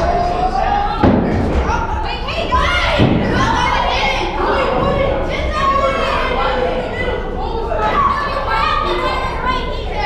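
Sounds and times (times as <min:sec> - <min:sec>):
babble of voices: 0:00.0 - 0:10.0.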